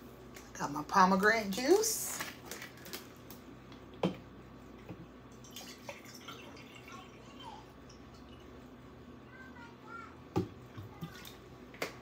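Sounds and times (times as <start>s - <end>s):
juice pouring into jar: 5.3s - 8.6s.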